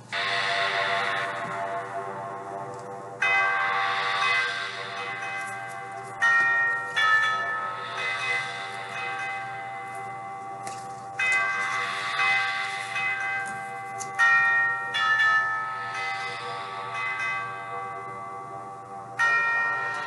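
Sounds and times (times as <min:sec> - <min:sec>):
bells ringing: 0:00.0 - 0:20.0.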